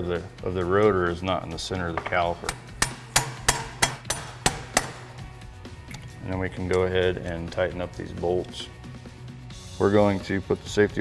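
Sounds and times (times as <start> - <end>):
mallet tapping metal: 2.0 - 5.2.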